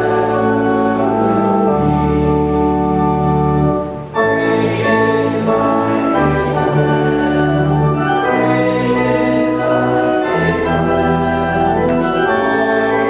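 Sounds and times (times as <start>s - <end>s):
church organ chords: 0.0s - 13.0s.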